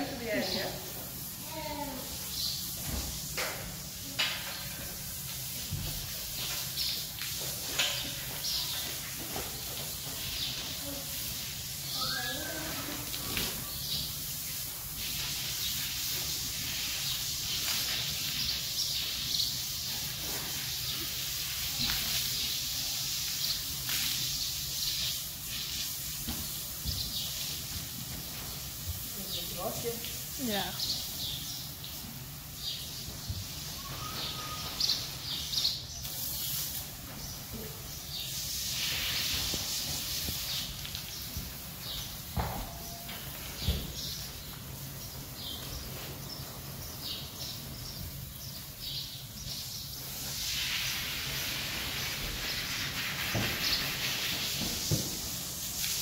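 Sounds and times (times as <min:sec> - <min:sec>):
hose water spraying: 0:00.0 - 0:56.0.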